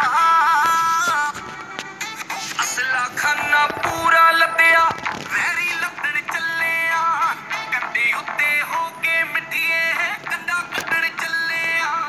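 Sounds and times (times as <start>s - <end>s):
backing track: 0.0s - 11.4s
man singing pop song: 2.6s - 12.0s.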